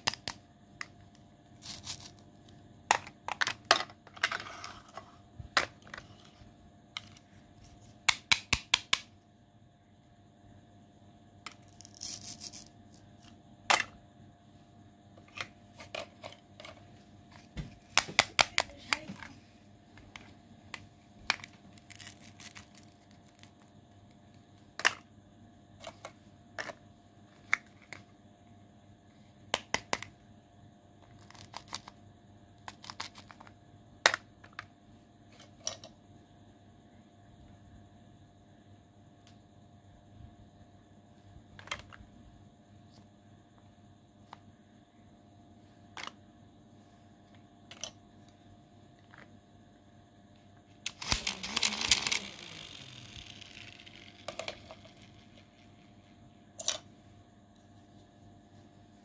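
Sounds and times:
plastic toy pieces clicking: 50.9s - 55.4s.

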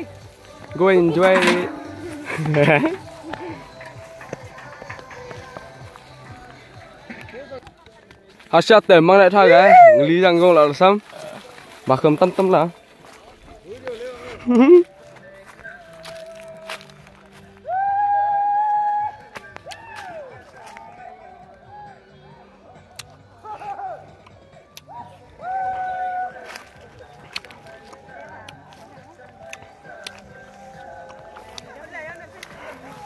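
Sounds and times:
people talking: 0.7s - 3.6s.

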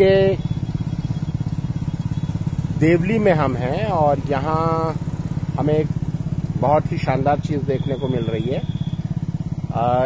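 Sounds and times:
motorcycle engine thudding: 0.0s - 9.7s.

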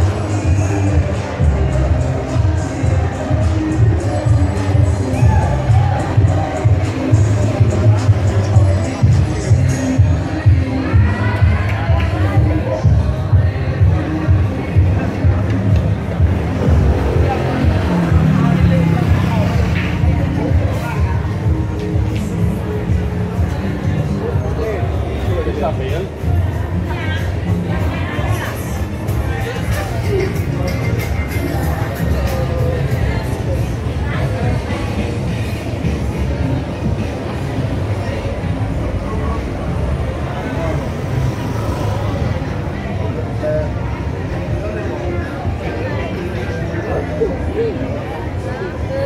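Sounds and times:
music with pulsing bass beat: 0.0s - 38.0s
people talking: 0.0s - 49.0s
street crowd voices: 0.0s - 49.0s.

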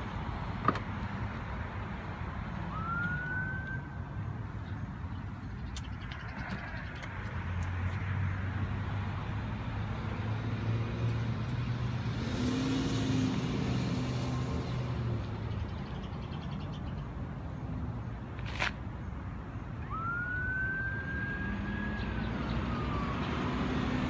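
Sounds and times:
vehicle engine hum: 0.0s - 24.0s.

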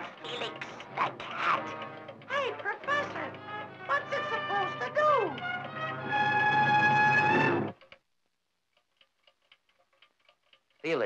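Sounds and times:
quick clock-like ticking: 0.0s - 6.6s, 8.7s - 11.0s.

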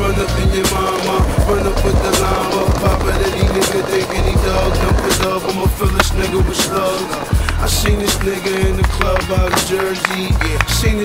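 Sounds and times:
hip-hop beat with heavy bass: 0.0s - 11.0s
skateboard clacks: 0.0s - 11.0s
skateboard wheels rolling on concrete: 0.0s - 11.0s.

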